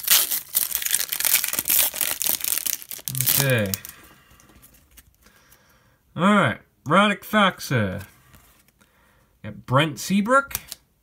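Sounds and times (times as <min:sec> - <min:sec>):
trading cards rustling: 0:00.0 - 0:05.7.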